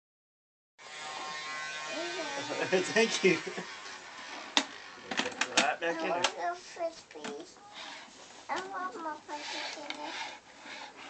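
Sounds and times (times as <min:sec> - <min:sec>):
toy vacuum motor buzzing: 0:00.8 - 0:06.3, 0:07.7 - 0:08.2, 0:09.3 - 0:11.0.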